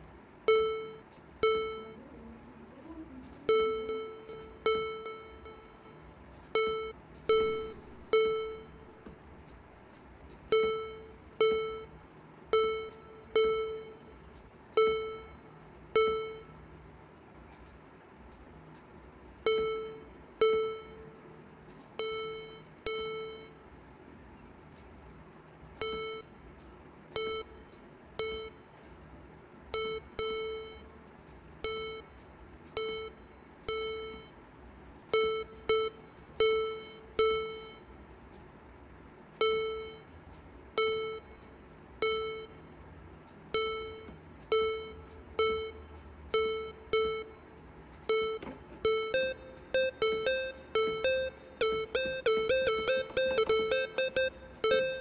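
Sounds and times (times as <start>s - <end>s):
bright synth plucks: 48.2s - 55.0s.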